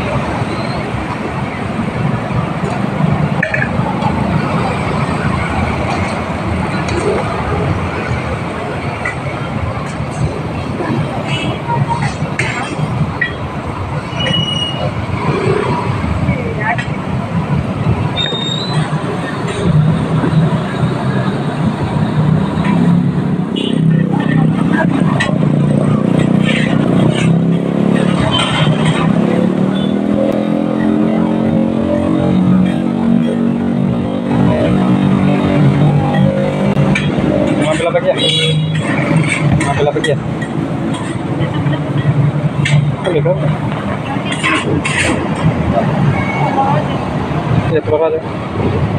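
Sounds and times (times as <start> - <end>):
indistinct voices: 0.0 - 48.9
vehicle engines on street: 0.0 - 48.9.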